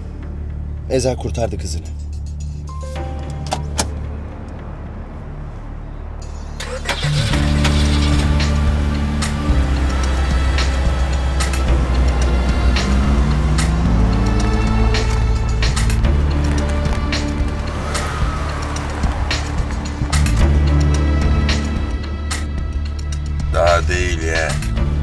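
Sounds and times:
car engines running: 1.3 - 25.0
dramatic music: 1.9 - 25.0.

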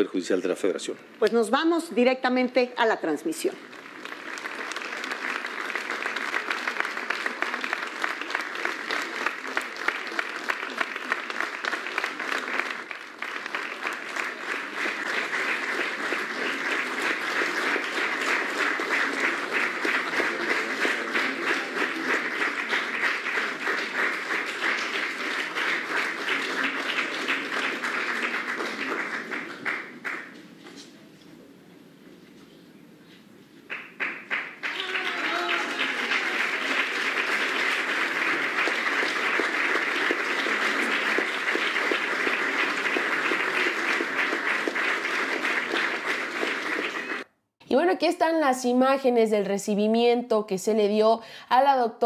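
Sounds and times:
large audience applauding: 3.2 - 30.4, 33.7 - 47.3.

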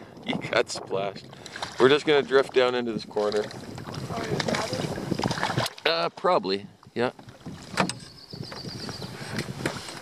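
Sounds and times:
water lapping against canoe: 0.0 - 10.0
wind: 0.0 - 10.0.

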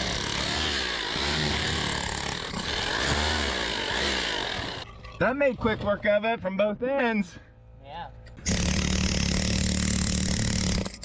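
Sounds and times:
rotary hammer chipping concrete: 0.0 - 4.9, 8.4 - 11.0.

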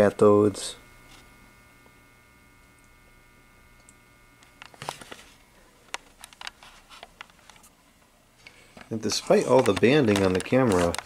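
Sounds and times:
fluorescent light ballast humming: 0.0 - 11.0.

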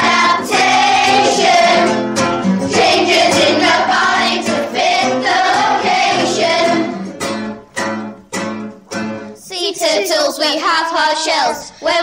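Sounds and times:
children's song singing: 0.0 - 7.4, 9.4 - 12.0.

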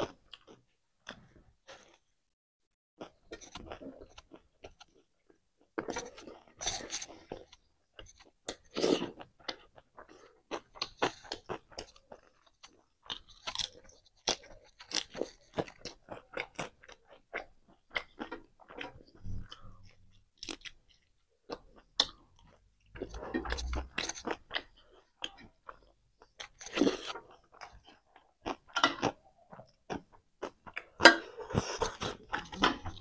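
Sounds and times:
crisp chewing crunches: 3.0 - 33.0.

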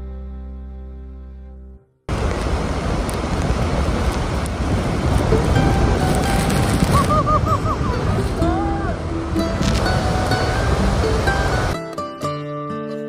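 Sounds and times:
waterfall roaring: 2.1 - 11.8
wind buffeting microphone: 2.1 - 11.8.

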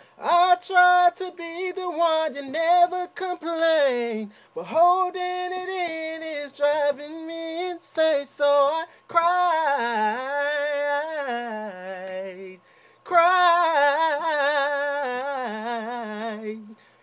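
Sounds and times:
man breathing: 0.0 - 0.2, 4.3 - 4.6, 8.9 - 9.1, 12.6 - 13.1, 16.7 - 17.0.

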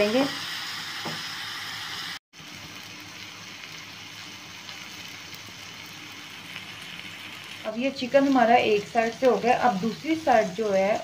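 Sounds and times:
chicken sizzling on grill pan: 0.0 - 11.0.

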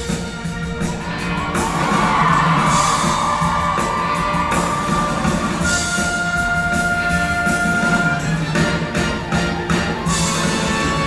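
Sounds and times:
band playing rock and roll: 0.0 - 11.0.

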